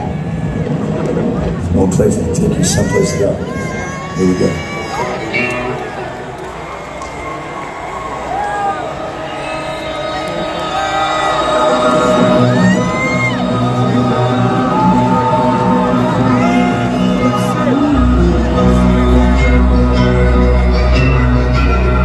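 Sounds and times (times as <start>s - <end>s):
crowd cheering and whistling: 2.8s - 22.0s
band playing low music: 9.9s - 22.0s.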